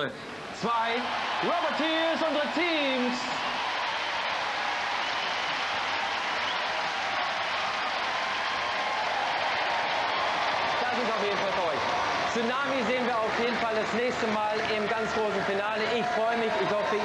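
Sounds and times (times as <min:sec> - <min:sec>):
audience applauding and cheering: 0:00.0 - 0:17.0.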